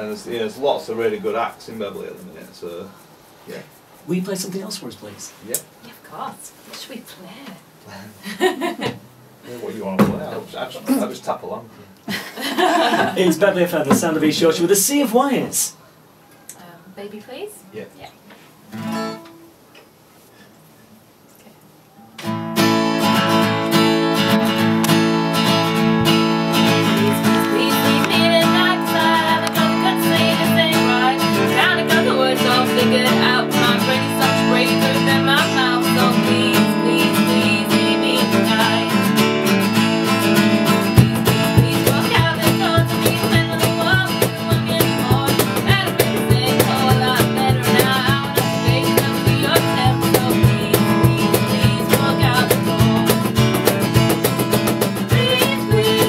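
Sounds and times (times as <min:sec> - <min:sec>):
strummed acoustic guitar: 0:18.7 - 0:19.5, 0:22.2 - 0:56.0
person singing: 0:26.8 - 0:39.1, 0:40.8 - 0:53.6, 0:55.0 - 0:56.0.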